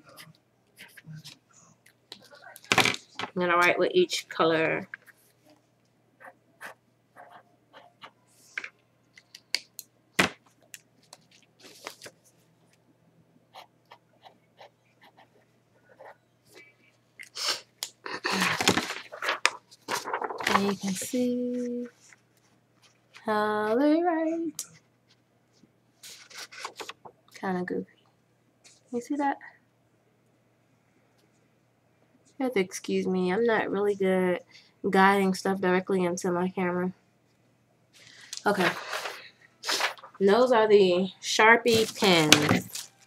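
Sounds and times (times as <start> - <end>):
paper rustling: 10.5 - 12.4, 18.3 - 23.2, 26.0 - 27.1, 38.5 - 40.2, 41.7 - 43.0.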